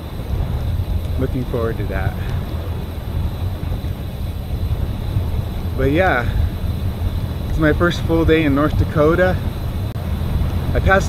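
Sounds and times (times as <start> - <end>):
tyre noise on road: 0.0 - 11.0
wind buffeting microphone: 0.0 - 11.0.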